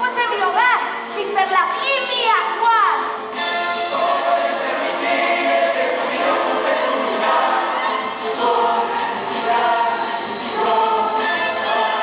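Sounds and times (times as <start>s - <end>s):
chorus singing: 3.4s - 12.0s.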